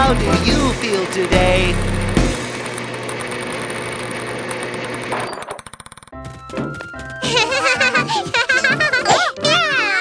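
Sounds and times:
cartoon machine whirring rattle: 0:00.5 - 0:09.2.

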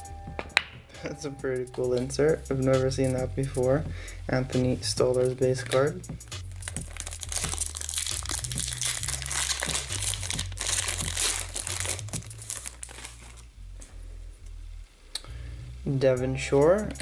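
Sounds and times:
background music with bass: 0:00.0 - 0:17.0
trading cards crinkling: 0:06.4 - 0:13.5.

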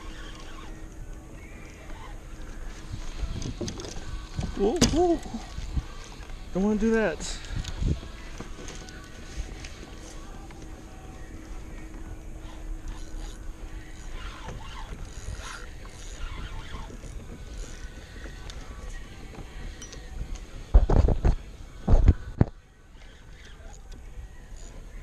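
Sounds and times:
water noise: 0:00.0 - 0:25.0
wind: 0:00.0 - 0:25.0.

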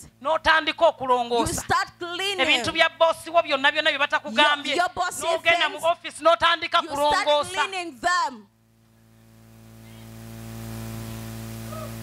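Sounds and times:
electrical mains hum and hiss: 0:00.0 - 0:12.0.

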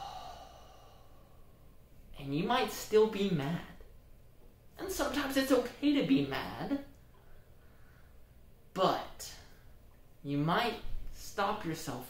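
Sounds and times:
person exhaling through face mask: 0:00.0 - 0:01.5.

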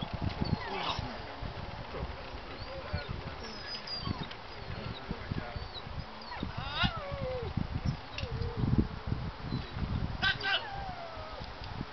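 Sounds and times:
dog whining: 0:03.5 - 0:04.3, 0:05.6 - 0:07.5, 0:10.3 - 0:11.5.

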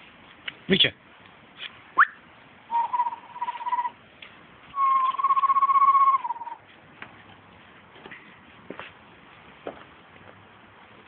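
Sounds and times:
person whistling: 0:02.0 - 0:03.9, 0:04.8 - 0:06.6.

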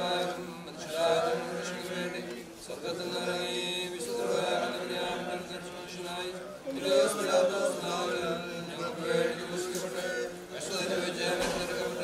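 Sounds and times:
liturgical chanting: 0:00.0 - 0:12.0.

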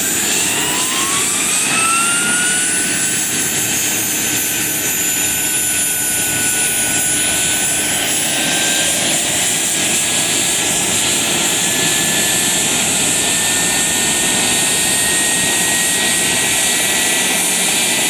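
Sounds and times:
model helicopter rotor whine: 0:00.0 - 0:18.0.

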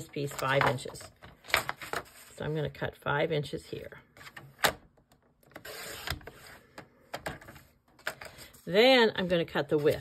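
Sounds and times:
blade scraping through paper: 0:05.6 - 0:06.7.

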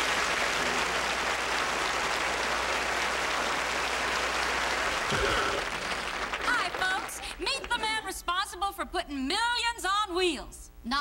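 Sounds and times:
audience applauding: 0:00.0 - 0:08.0.

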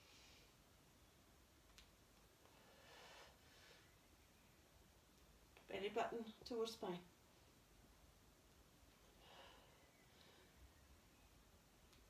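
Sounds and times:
person breathing softly: 0:00.0 - 0:00.6, 0:02.4 - 0:04.0, 0:09.0 - 0:10.8.

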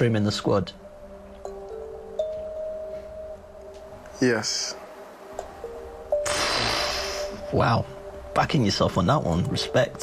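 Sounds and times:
suspense music with held tones: 0:00.0 - 0:10.0.

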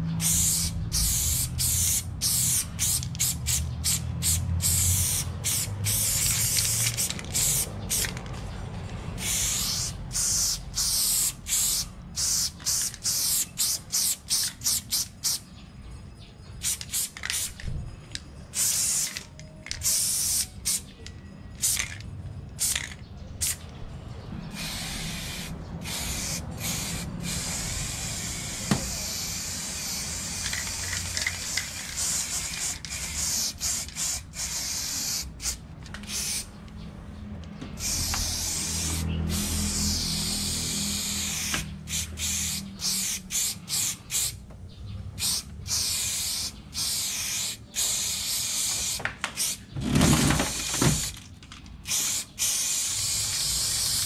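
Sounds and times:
spray-paint cans hissing: 0:00.1 - 0:08.5, 0:09.1 - 0:15.5, 0:16.6 - 0:17.6, 0:18.5 - 0:21.0, 0:21.6 - 0:22.0, 0:22.6 - 0:23.6, 0:24.5 - 0:36.6, 0:37.8 - 0:44.4, 0:45.2 - 0:51.2, 0:51.8 - 0:54.0.

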